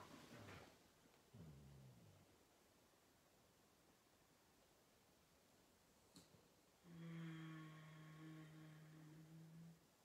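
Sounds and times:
faint click: 6.1s - 6.4s
woman humming: 6.8s - 9.9s.

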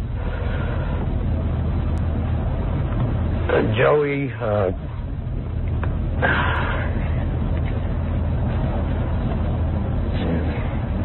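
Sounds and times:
videotape rumble and hiss: 0.0s - 11.0s
halting speech: 3.4s - 4.9s.

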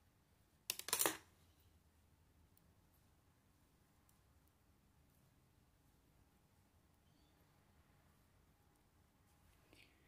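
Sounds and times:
metal knitting needles clicking: 0.7s - 1.2s.

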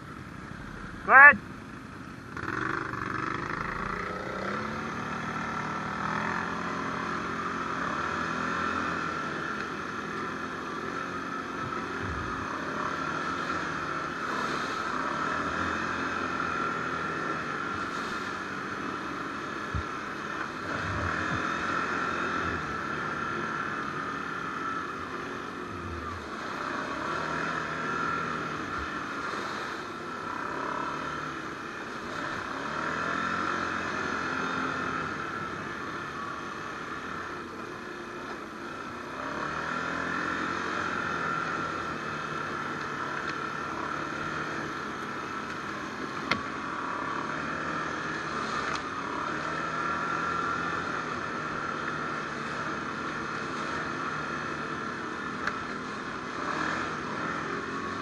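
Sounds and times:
atv engine running: 0.0s - 58.0s.

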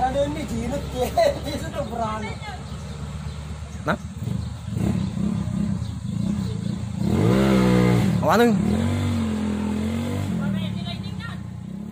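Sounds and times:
motorcycle engine running: 0.0s - 11.9s.

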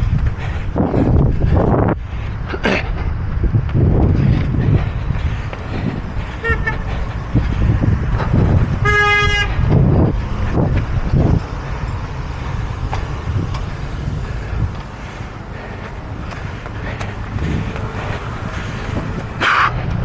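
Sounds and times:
road traffic rumble: 0.0s - 20.0s
vehicle horn toot: 6.4s - 6.9s, 8.8s - 9.5s.

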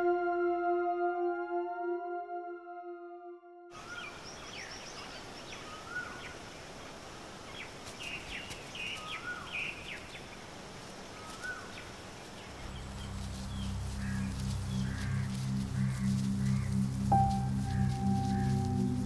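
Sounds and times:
low musical drone: 0.0s - 3.6s, 12.5s - 19.0s
steady background hiss: 3.8s - 19.0s
birds chirping: 11.1s - 19.0s.

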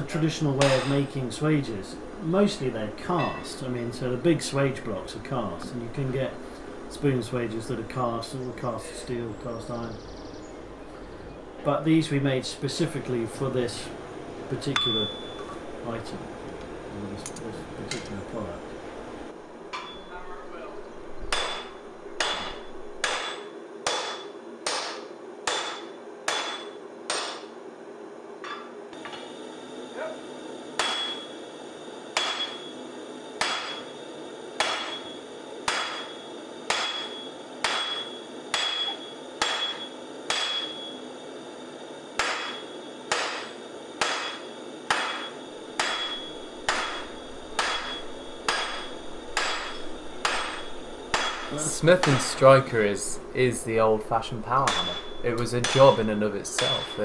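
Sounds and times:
sledgehammer striking metal on anvil: 0.6s - 1.2s, 3.2s - 3.6s, 14.8s - 15.4s, 19.7s - 20.1s, 21.3s - 27.5s, 30.8s - 31.3s, 32.2s - 32.7s, 33.4s - 33.9s, 34.6s - 41.0s, 42.2s - 52.5s, 54.6s - 57.0s.

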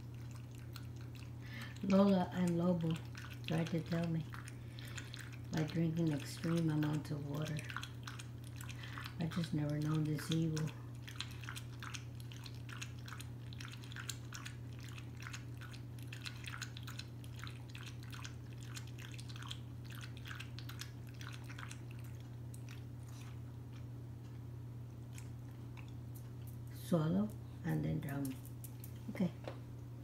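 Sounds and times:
dog lapping water: 0.0s - 23.9s.

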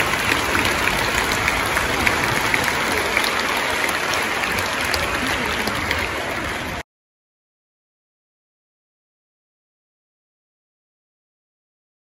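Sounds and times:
audience applauding: 0.0s - 6.8s.

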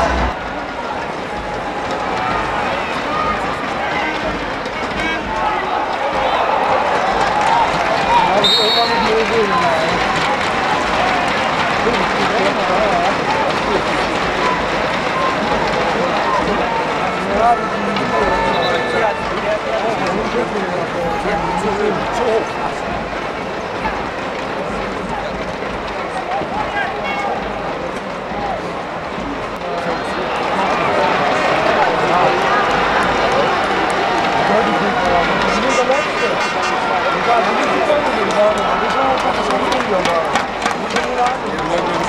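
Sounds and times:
crowd talking and calling: 0.0s - 42.0s.

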